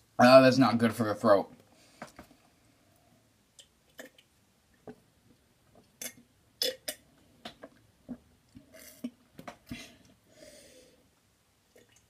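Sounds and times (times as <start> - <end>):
person swallowing gulps: 3.9 - 4.3.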